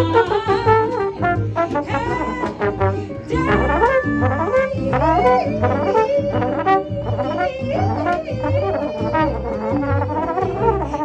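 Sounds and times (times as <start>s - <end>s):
bass accompaniment: 0.0s - 11.0s
slide trombone melody: 0.0s - 11.0s.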